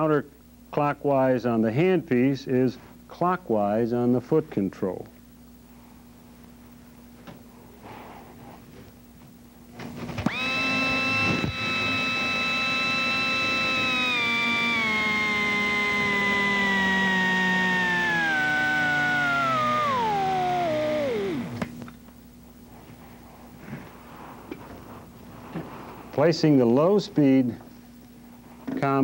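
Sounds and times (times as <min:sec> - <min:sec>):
dental drill motor whining: 0:10.2 - 0:21.9.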